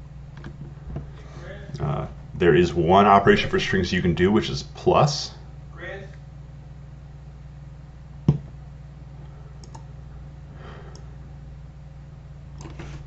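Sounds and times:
steady low hum: 0:00.0 - 0:13.0
computer mouse clicks: 0:09.6 - 0:09.8.

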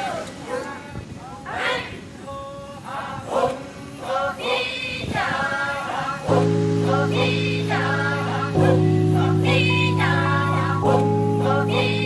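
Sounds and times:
choir singing: 0:02.8 - 0:12.0.

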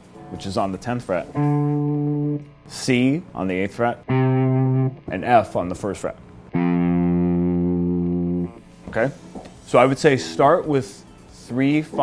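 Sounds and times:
electric guitar low note: 0:01.2 - 0:02.7, 0:03.9 - 0:05.2, 0:06.5 - 0:08.6.

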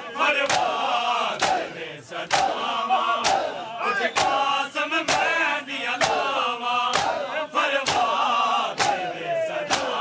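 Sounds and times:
male voices shouting and chanting: 0:00.0 - 0:10.0
men striking chests with hands: 0:02.3 - 0:02.6, 0:03.2 - 0:03.5, 0:06.0 - 0:06.3, 0:06.9 - 0:10.0.

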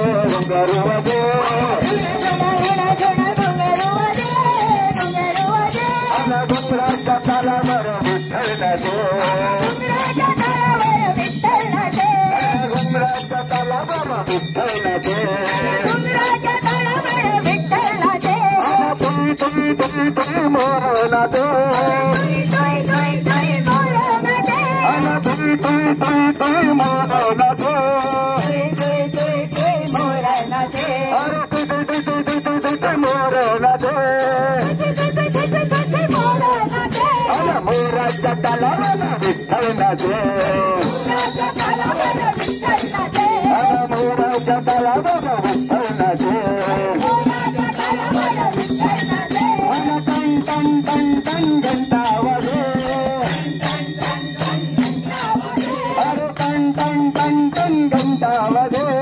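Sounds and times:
devotional group singing: 0:00.0 - 0:59.0
hand cymbals and jingles: 0:00.0 - 0:59.0.

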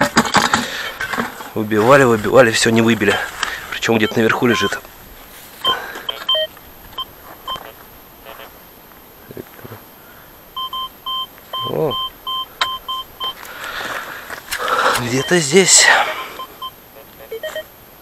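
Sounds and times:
metal detector beeps: 0:04.0 - 0:04.8, 0:05.6 - 0:07.7, 0:10.6 - 0:13.4, 0:15.0 - 0:16.7, 0:17.3 - 0:17.7.

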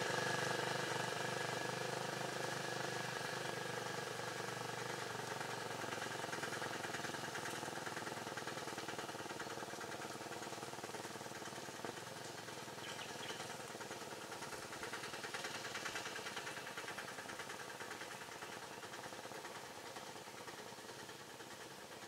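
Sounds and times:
small engine idling: 0:00.0 - 0:22.0.

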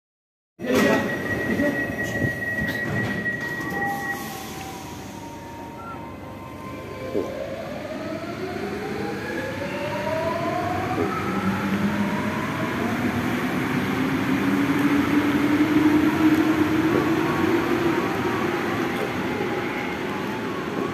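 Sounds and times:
high warning tone: 0:00.7 - 0:07.6.

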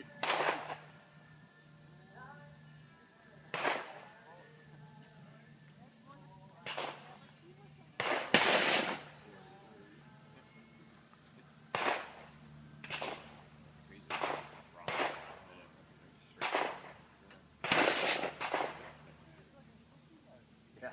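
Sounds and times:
gunshots with echo: 0:00.2 - 0:00.9, 0:03.5 - 0:04.0, 0:08.0 - 0:09.2, 0:11.7 - 0:13.4, 0:14.1 - 0:15.5, 0:16.4 - 0:17.0, 0:17.6 - 0:19.0.

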